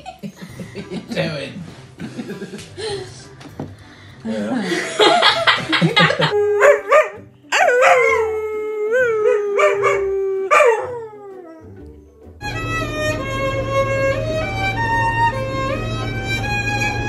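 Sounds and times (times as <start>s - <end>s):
dog howling: 6.2s - 11.8s.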